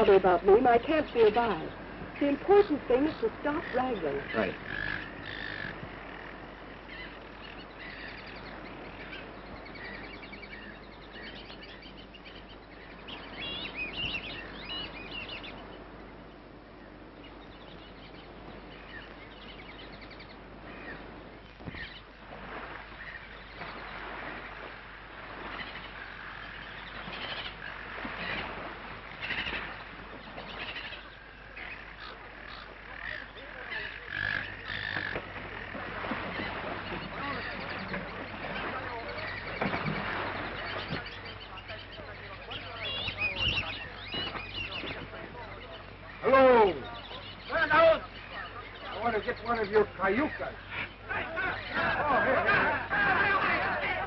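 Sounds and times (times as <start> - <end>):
bird chirping trills: 0.0 - 22.2, 25.4 - 54.0
low film soundtrack hum: 0.0 - 54.0.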